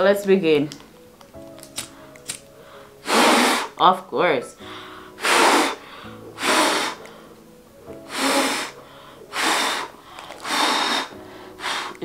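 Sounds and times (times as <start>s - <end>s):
person blowing hard: 2.9s - 3.8s, 4.9s - 7.3s, 8.0s - 12.0s.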